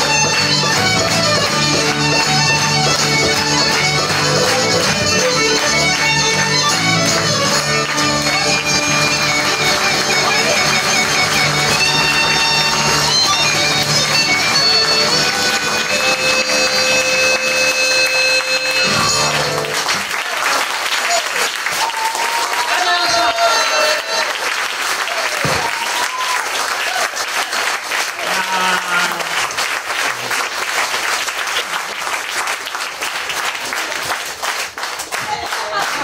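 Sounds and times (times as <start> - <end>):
audience applause: 0.0 - 36.0
audience cheering and whooping: 20.3 - 27.5, 28.1 - 29.5.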